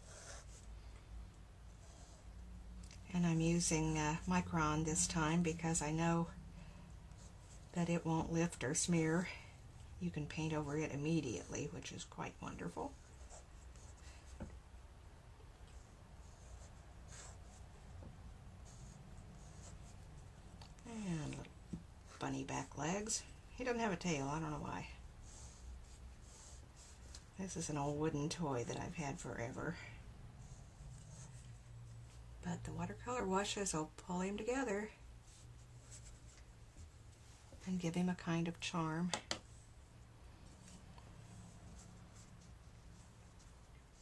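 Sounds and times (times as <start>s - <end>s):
pen scratching on paper: 0.0s - 0.7s, 15.7s - 17.9s, 18.6s - 20.1s, 25.2s - 27.7s, 30.4s - 31.6s
low room hum: 0.0s - 44.0s
brush strokes on paper: 1.6s - 2.4s, 10.3s - 14.5s, 15.7s - 21.4s, 24.2s - 32.4s, 34.9s - 37.8s, 39.5s - 44.0s.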